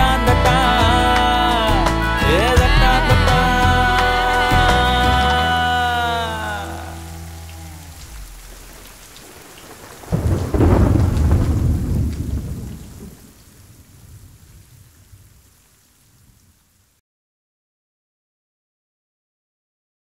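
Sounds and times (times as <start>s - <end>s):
song music: 0.0s - 9.1s
steady rain: 3.6s - 17.0s
thunder clap rolling: 7.9s - 15.4s.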